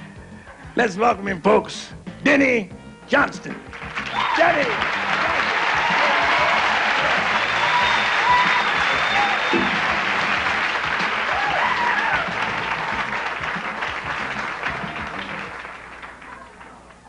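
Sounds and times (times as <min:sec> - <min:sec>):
audience applauding: 0:03.6 - 0:17.0.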